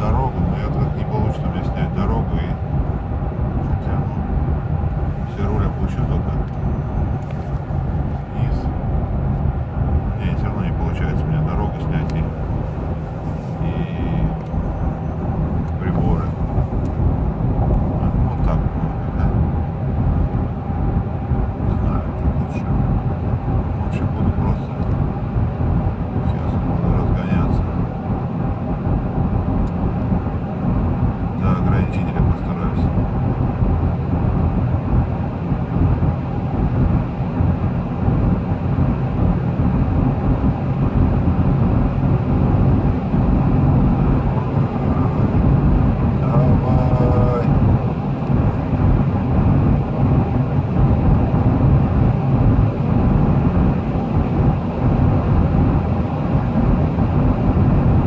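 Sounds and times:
car cabin rumble accelerating: 0:00.0 - 0:58.0.

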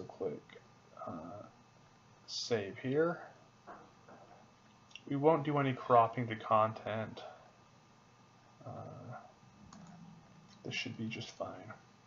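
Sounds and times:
man saying uh: 0:00.0 - 0:01.5, 0:08.6 - 0:09.2, 0:10.7 - 0:11.8
faint mouse click: 0:09.7 - 0:10.6.

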